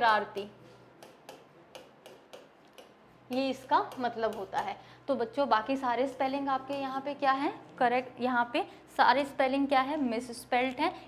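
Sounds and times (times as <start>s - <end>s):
marker ticking on whiteboard: 1.0s - 4.7s.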